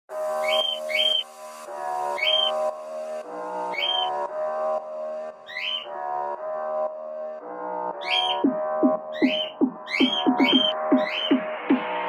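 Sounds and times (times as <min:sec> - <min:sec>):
instrumental backing of held chords: 0:00.1 - 0:12.0
parrot chirps: 0:00.4 - 0:01.2, 0:02.1 - 0:02.6, 0:03.7 - 0:04.2, 0:08.0 - 0:08.4, 0:09.1 - 0:11.4.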